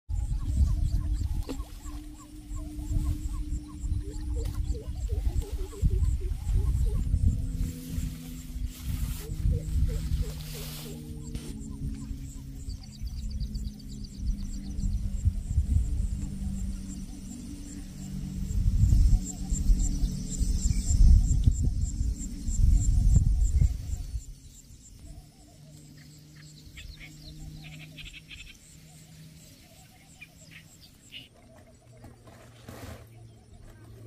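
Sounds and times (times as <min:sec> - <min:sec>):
wind buffeting microphone: 0:00.1 - 0:25.4
faint high chirping calls: 0:00.1 - 0:34.0.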